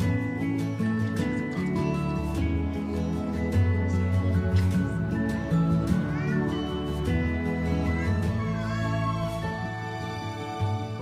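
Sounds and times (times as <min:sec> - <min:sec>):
soft background music: 0:00.0 - 0:11.0
high wavering vocal cry: 0:06.0 - 0:10.6.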